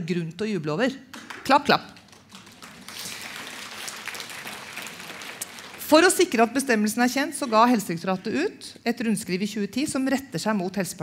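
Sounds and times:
woman speaking: 0:00.0 - 0:02.0, 0:05.8 - 0:11.0
audience applauding: 0:01.3 - 0:06.4.

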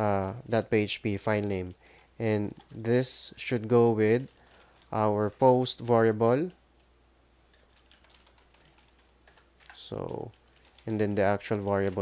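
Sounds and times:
faint keyboard typing: 0:01.1 - 0:06.9, 0:07.5 - 0:12.0.

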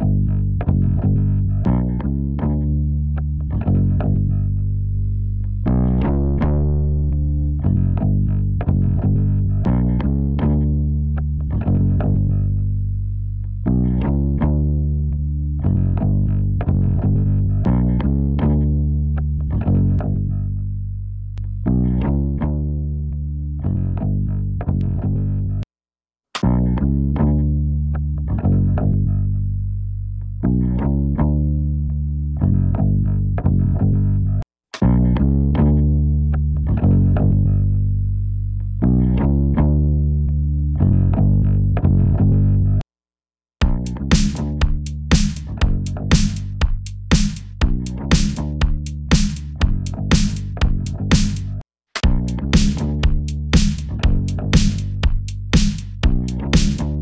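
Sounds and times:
plucked electric bass music: 0:00.0 - 0:25.6, 0:26.4 - 0:42.8, 0:43.6 - 0:57.0.

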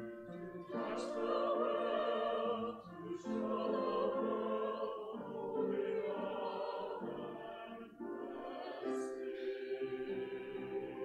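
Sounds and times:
choir singing sustained chords: 0:00.0 - 0:11.0.

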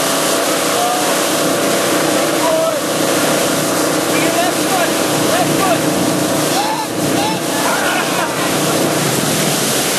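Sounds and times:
churning wake water rushing: 0:00.0 - 0:09.9
motorboat engine running: 0:00.0 - 0:09.9.

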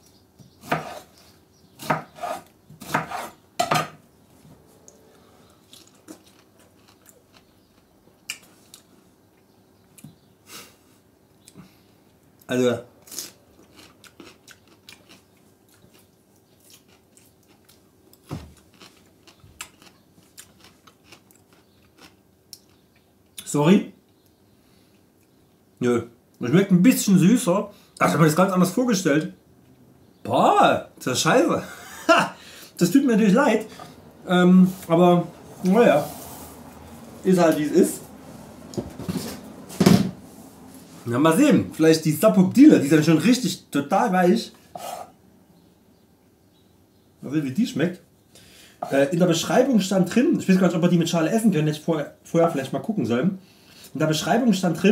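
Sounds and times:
person chewing pineapple: 0:04.8 - 0:10.1, 0:11.4 - 0:23.4.

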